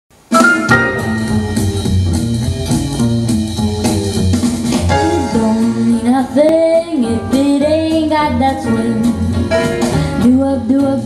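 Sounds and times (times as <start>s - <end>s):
swing jazz backing track: 0.3s - 11.0s.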